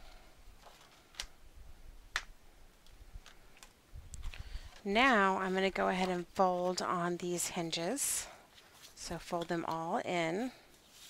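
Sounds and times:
paper rustling: 0.6 - 1.3, 2.8 - 7.2, 8.5 - 11.0.

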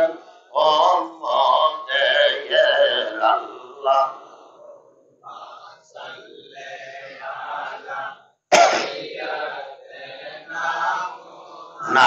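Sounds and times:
man clearing throat into microphone: 8.5 - 9.0.

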